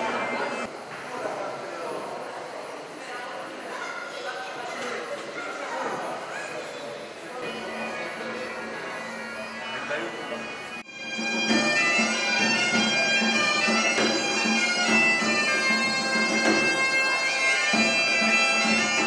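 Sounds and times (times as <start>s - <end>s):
bagpipe music: 0.0s - 0.7s, 7.5s - 19.0s.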